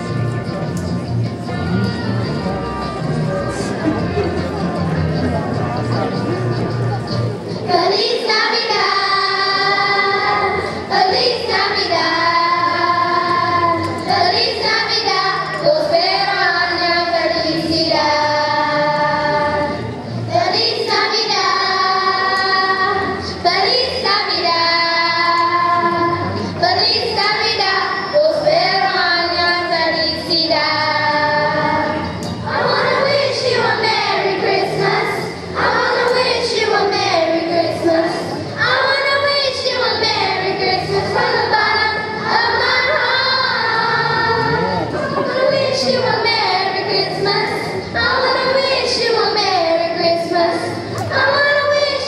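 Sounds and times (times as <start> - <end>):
children's choir singing: 7.6 - 52.0.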